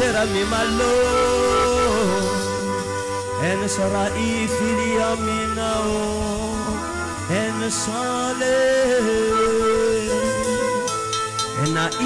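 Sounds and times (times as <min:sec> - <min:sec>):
man singing held note: 0:00.0 - 0:10.9
sustained instrumental chords and bass: 0:00.0 - 0:12.0.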